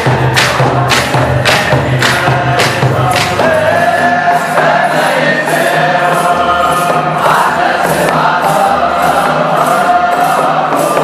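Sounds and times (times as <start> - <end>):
choir singing over steady beat: 0.0 - 11.0.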